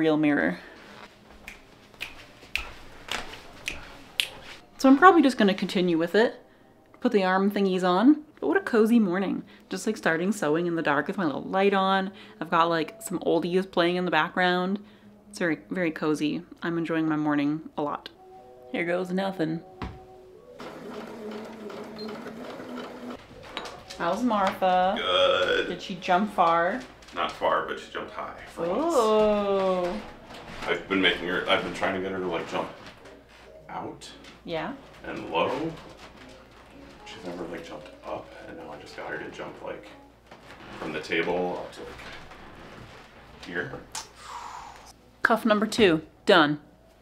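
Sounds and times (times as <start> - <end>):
sewing machine running: 20.6 - 23.2.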